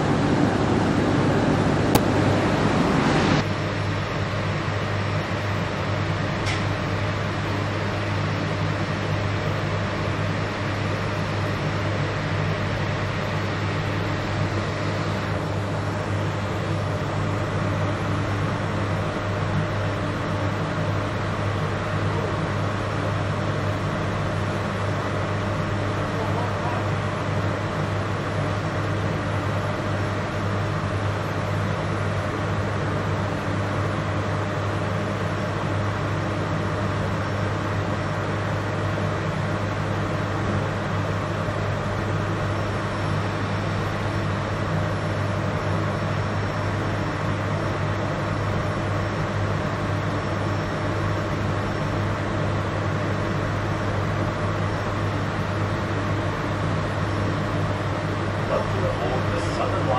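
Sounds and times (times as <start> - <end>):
train equipment humming and whirring: 0.0 - 59.9.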